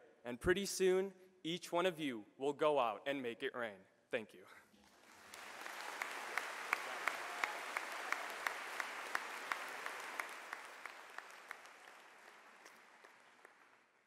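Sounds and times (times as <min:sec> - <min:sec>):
audience applause: 0:04.9 - 0:14.0
nearby person clapping: 0:05.1 - 0:13.9.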